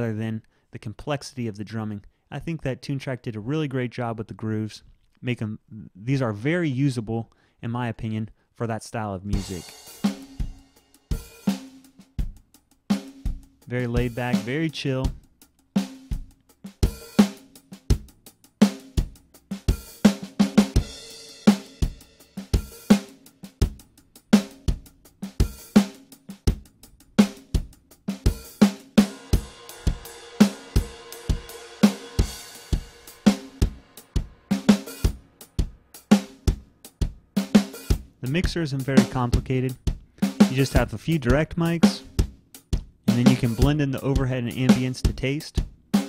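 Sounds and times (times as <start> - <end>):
drum kit groove: 9.2 - 46.0
cymbal wash: 29.0 - 34.1.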